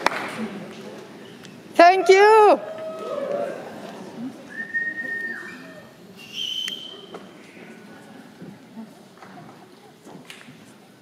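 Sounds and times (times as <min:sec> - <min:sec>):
murmur of concert hall crowd: 0:00.0 - 0:11.0
whistled notes: 0:04.5 - 0:07.1.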